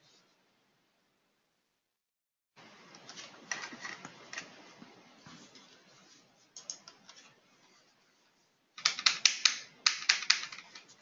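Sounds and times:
keyboard typing: 8.8 - 11.0.

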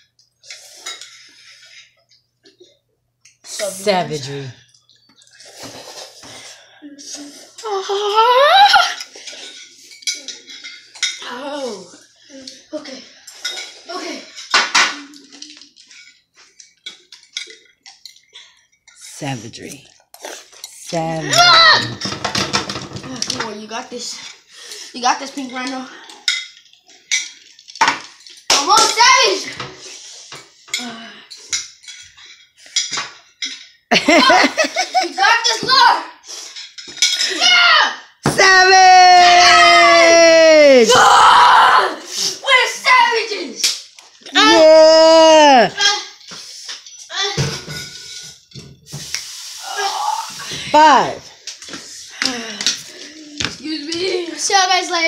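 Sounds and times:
children shouting and whooping: 7.6 - 9.1, 21.3 - 22.0, 37.2 - 43.6, 44.3 - 46.1, 49.6 - 50.6
long high-pitched yell: 7.7 - 9.0, 37.4 - 42.0, 44.4 - 45.8
forks clinking on ceramic bowls: 8.7 - 11.5, 13.2 - 19.1, 24.2 - 29.2, 30.3 - 35.1, 36.5 - 37.5, 46.0 - 48.7
child's voice: 11.2 - 13.1, 13.8 - 14.4, 28.6 - 29.8, 35.0 - 36.2, 41.9 - 43.6, 47.1 - 47.6, 53.0 - 55.0.

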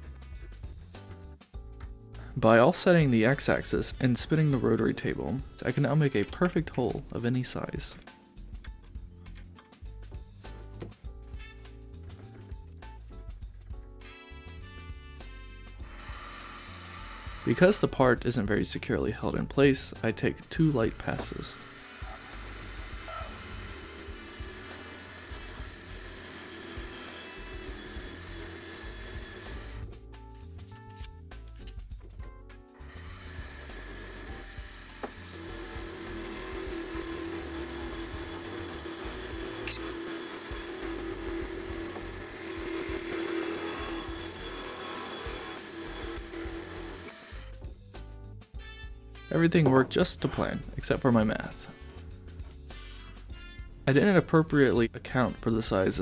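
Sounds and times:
background music: 0.0 - 56.0
milling machine cutting metal: 15.8 - 17.9, 20.3 - 29.8, 32.8 - 47.5.

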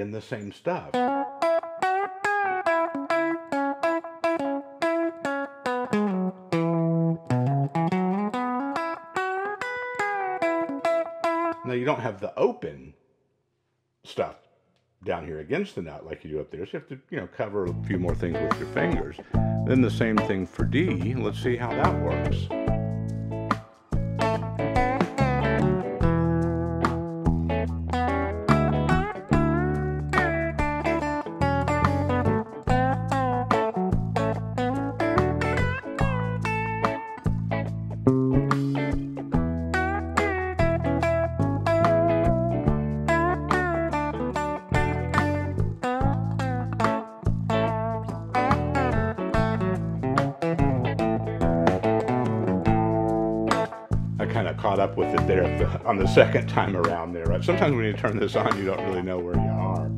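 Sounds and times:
electric guitar lead lines: 0.9 - 11.7, 17.7 - 59.9
backing track with drums and bass: 17.6 - 59.9.

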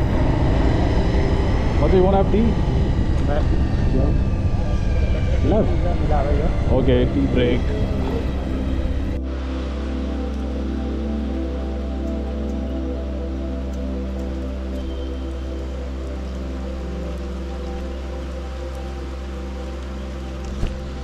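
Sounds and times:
calm ambient music: 0.0 - 21.0.

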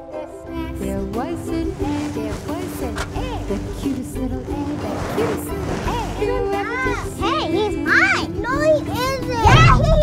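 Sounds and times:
children squealing and chattering: 6.0 - 10.0.

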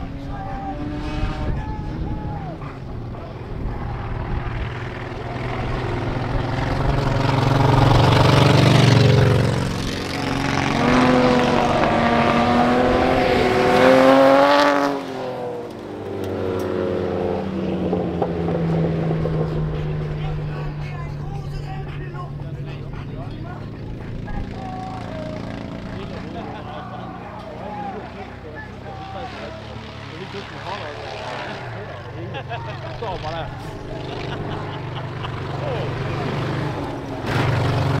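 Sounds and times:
race cars passing on dirt: 0.0 - 38.0.

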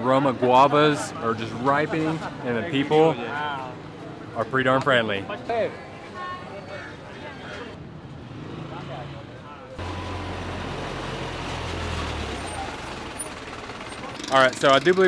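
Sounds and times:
street noise: 0.0 - 15.0
truck engine rumbling: 9.8 - 15.0.

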